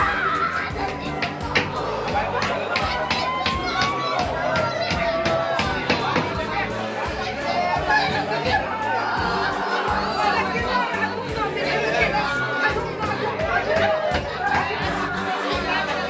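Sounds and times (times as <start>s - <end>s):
background music: 0.0s - 16.0s
crowd talking: 0.0s - 16.0s
people crying: 0.0s - 16.0s.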